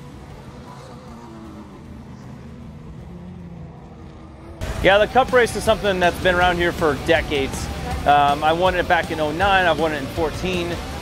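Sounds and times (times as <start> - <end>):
distant truck engines droning: 0.0 - 11.0.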